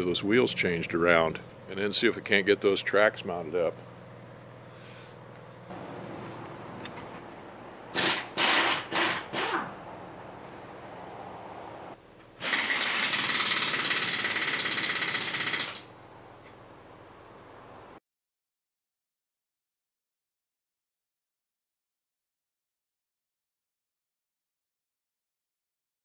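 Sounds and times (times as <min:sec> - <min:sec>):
pneumatic impact wrench: 0:07.9 - 0:09.8, 0:12.4 - 0:15.9.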